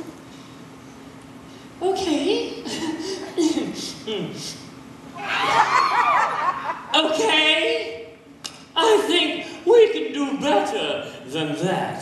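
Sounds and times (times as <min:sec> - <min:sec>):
audience laughing: 0:05.2 - 0:07.0.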